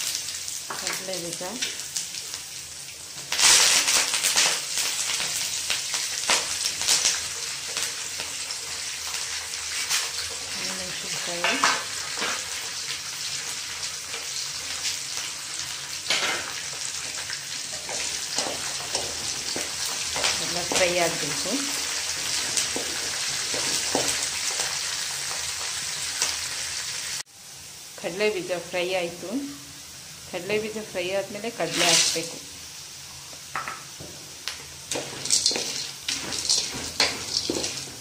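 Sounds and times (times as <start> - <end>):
food sizzling in hot oil: 0.0 - 38.0.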